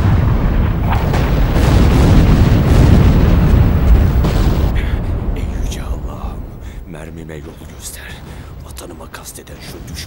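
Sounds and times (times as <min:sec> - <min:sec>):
sharp blasts: 0:00.0 - 0:08.6
heavy gunfire and shell explosions: 0:00.0 - 0:10.0.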